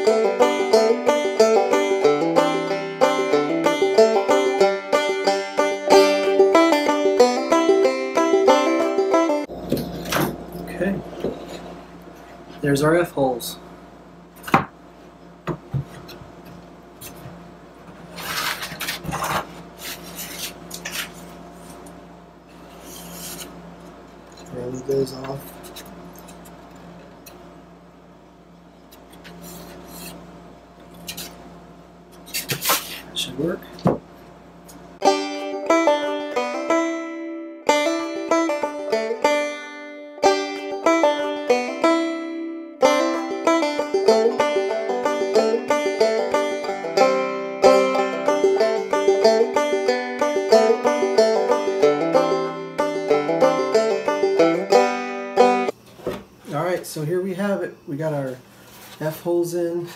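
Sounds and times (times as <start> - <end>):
upbeat plucked-string music: 0.0 - 11.6, 35.0 - 55.7.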